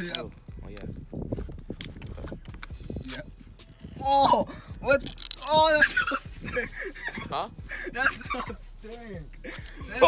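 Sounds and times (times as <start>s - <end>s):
tin lid clicking and crackling: 5.0s - 5.6s.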